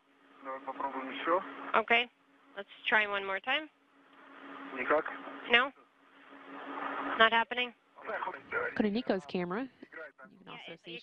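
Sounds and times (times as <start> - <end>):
steady low hum: 0.0 - 11.0
radio static hiss: 0.4 - 2.0, 4.2 - 5.7, 6.3 - 9.1.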